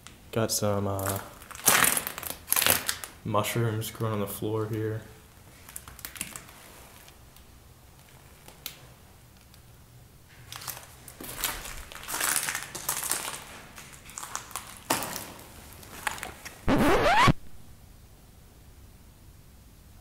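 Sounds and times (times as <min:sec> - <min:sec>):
footsteps crunching over rubble: 0:01.0 - 0:03.2, 0:10.3 - 0:16.6.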